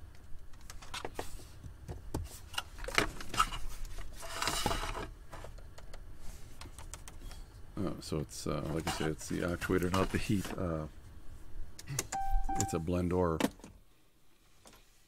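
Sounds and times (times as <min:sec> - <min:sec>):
scraping rustle: 0:08.5 - 0:10.8.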